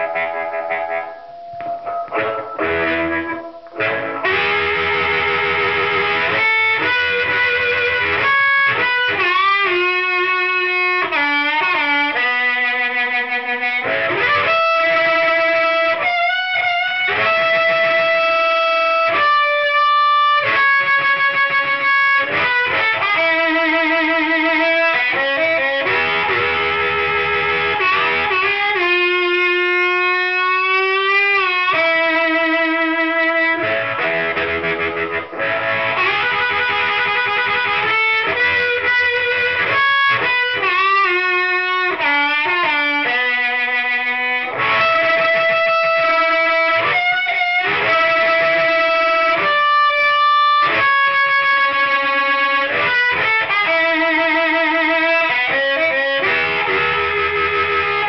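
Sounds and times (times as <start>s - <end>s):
amplified blues harmonica: 0.0s - 58.0s.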